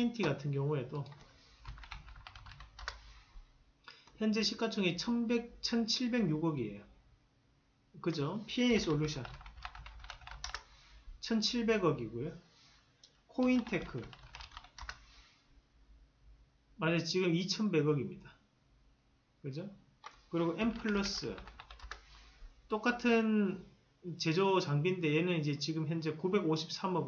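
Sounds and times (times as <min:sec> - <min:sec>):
computer keyboard typing: 0:01.0 - 0:03.1, 0:08.7 - 0:10.7, 0:13.4 - 0:15.0, 0:20.0 - 0:22.0.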